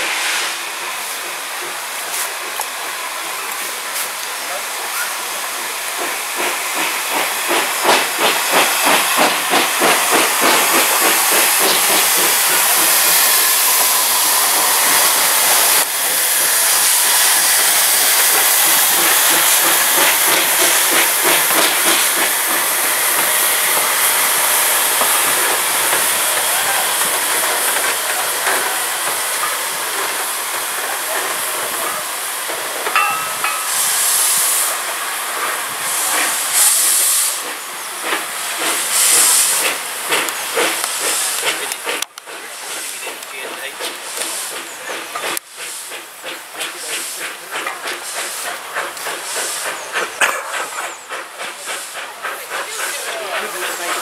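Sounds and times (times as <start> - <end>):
hissing steam: 0.0 - 54.0
steam locomotive exhaust beats: 0.0 - 54.0.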